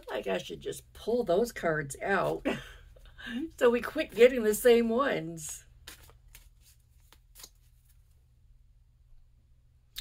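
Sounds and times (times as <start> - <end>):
cards rustling: 5.3 - 8.2.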